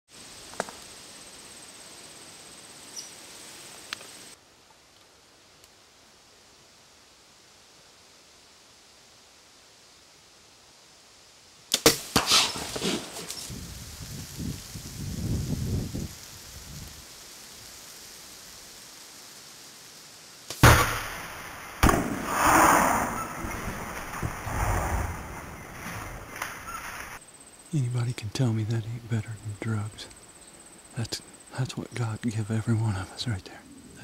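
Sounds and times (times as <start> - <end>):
quick cracks: 11.7 - 13.4
animal crashing through brush: 11.7 - 13.8, 20.5 - 27.2.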